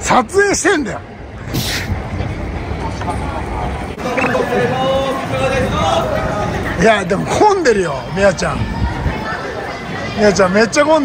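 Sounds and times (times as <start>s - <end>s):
city traffic rumble: 0.0s - 11.0s
short sharp hiss: 1.5s - 1.9s.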